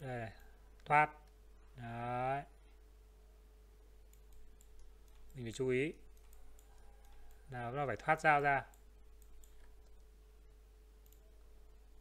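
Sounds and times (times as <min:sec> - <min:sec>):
faint steady hum: 0:00.0 - 0:12.0
computer mouse clicks: 0:04.1 - 0:10.2, 0:11.0 - 0:11.5.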